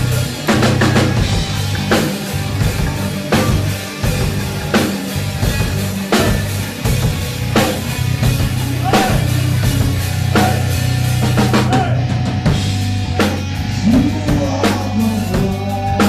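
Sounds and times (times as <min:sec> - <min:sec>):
heavy metal band playing: 0:00.0 - 0:16.0
loud low bass line: 0:00.0 - 0:16.0.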